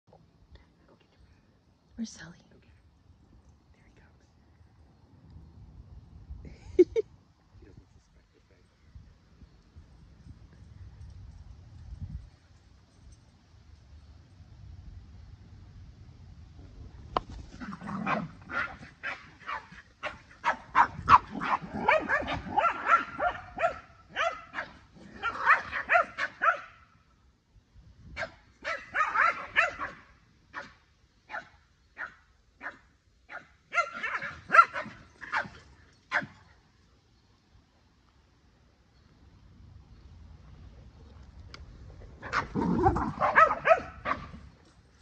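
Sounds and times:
dog barking: 18.0s - 26.8s, 28.2s - 36.4s, 42.2s - 44.4s.

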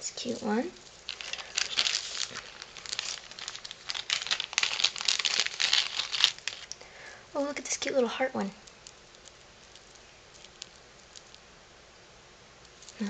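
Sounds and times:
plastic bag crinkling: 0.2s - 6.9s, 7.9s - 11.5s, 12.6s - 13.0s.

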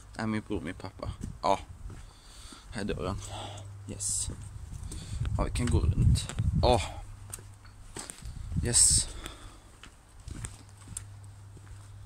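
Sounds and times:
steady low hum: 0.0s - 12.0s
footsteps on hard ground: 1.0s - 3.3s, 4.1s - 12.0s.

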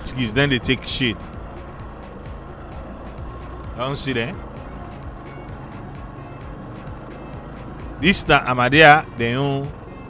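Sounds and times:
motorcycle running: 0.0s - 10.0s
music with ticking beat: 0.0s - 10.0s.

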